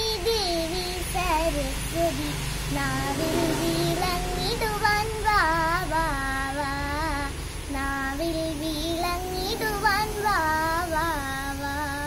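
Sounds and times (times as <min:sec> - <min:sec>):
girl singing devotional song: 0:00.0 - 0:12.0.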